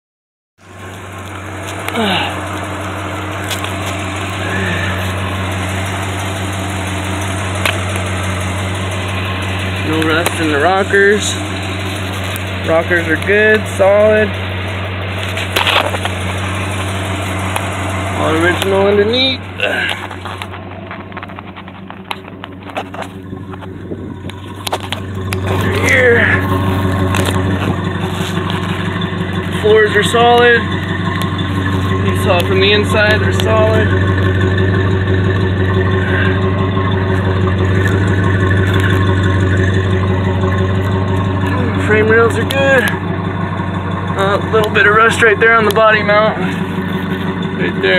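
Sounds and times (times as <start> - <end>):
car engine idling: 0.6 - 47.9.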